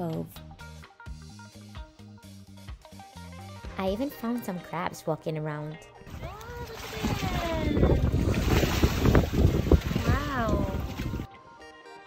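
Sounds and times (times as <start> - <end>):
background music: 0.0 - 12.0
water washing against rocks: 6.1 - 11.3
wind gusting on microphone: 6.1 - 11.3.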